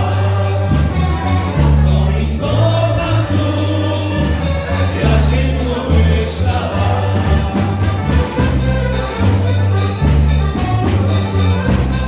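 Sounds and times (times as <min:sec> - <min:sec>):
sung vocals: 0:00.0 - 0:08.6
bouncing bass line: 0:00.0 - 0:12.0
dance band playing: 0:00.0 - 0:12.0.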